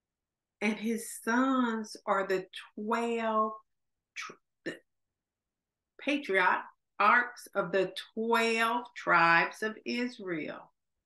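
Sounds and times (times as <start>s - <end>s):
woman speaking: 0.6s - 4.8s, 6.0s - 10.8s.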